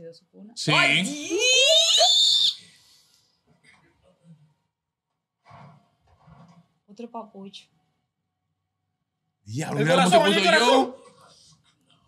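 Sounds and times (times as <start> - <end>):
person shrieking: 0.7 - 2.6.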